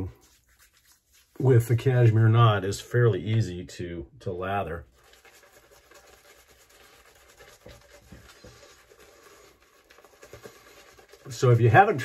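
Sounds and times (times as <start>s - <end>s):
shaving brush scrubbing lather: 0.0s - 3.1s, 4.5s - 12.0s.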